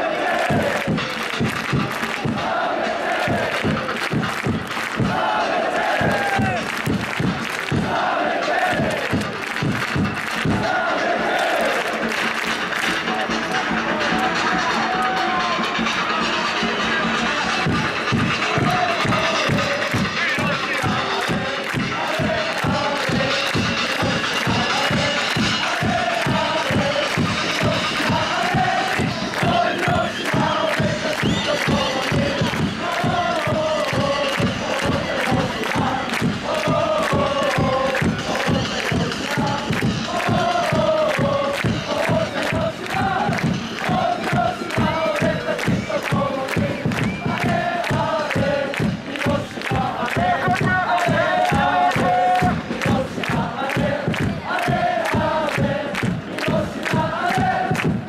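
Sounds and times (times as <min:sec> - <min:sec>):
rapid drumbeat: 0:00.0 - 0:58.0
supporters chanting in unison: 0:00.0 - 0:58.0.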